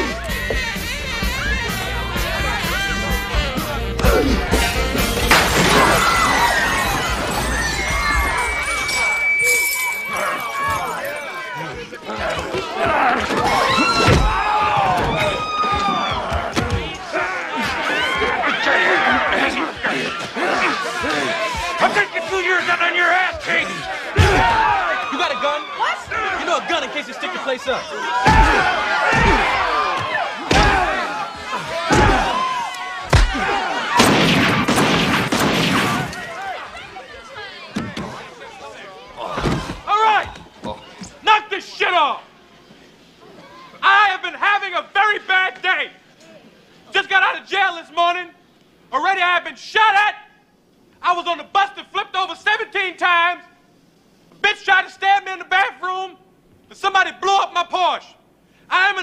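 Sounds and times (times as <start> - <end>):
bar band music: 0.0 - 5.5
crowd shouting and yelling: 0.0 - 52.3
glass smashing: 5.2 - 11.5.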